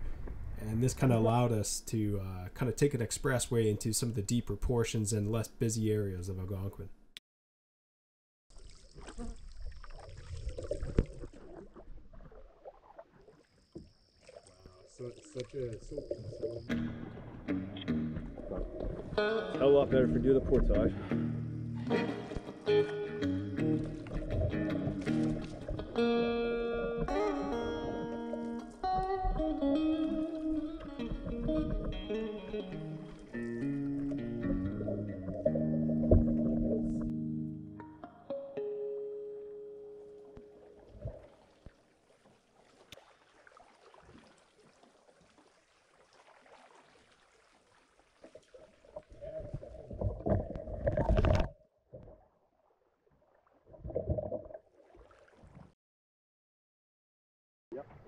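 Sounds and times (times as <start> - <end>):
water splashes: 8.5 - 17.6, 18.2 - 21.2, 23.6 - 37.1, 40.4 - 55.8, 57.7 - 58.0
canoe paddling water sounds: 8.5 - 37.2, 39.1 - 55.8
blues electric guitar: 16.7 - 40.4.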